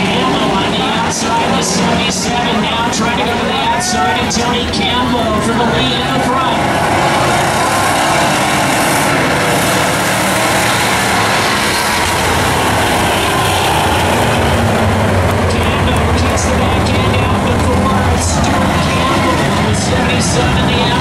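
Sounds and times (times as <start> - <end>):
stock car engines racing: 0.0 - 21.0.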